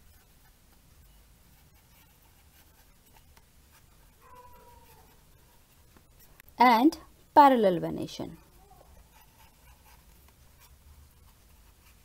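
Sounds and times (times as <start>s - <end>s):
marker writing on paper: 1.5s - 5.2s, 8.8s - 12.0s.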